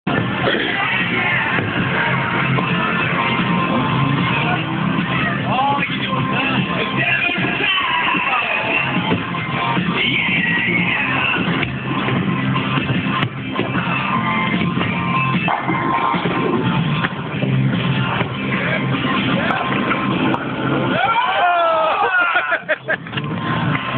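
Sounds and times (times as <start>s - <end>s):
loud music: 0.1s - 23.9s
voices: 0.4s - 11.6s.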